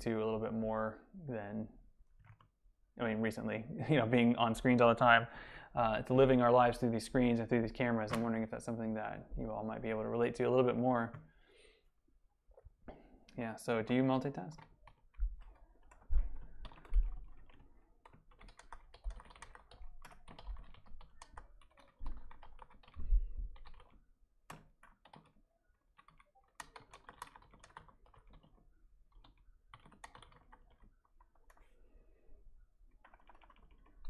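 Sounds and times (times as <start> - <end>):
typing on computer keyboard: 14.5 - 31.7, 32.9 - 34.0.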